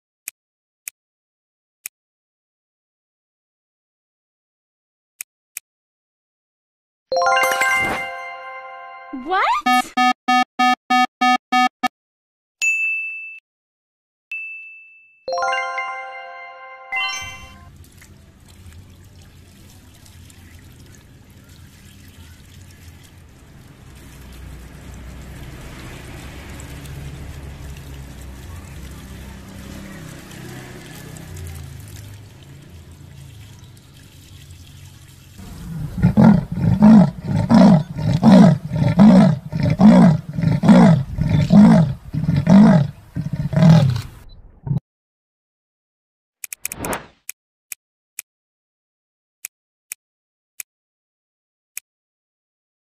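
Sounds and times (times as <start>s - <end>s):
rising run of chime notes: 7.1s - 9.4s, 15.3s - 17.7s
high ding: 12.6s - 13.4s, 14.3s - 17.6s
leopard rasping sawing call: 35.4s - 44.1s.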